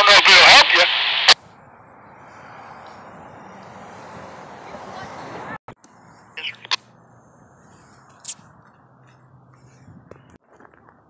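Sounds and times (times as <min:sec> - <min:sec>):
radio transmission over scanner: 0:00.0 - 0:01.4, 0:06.3 - 0:06.8.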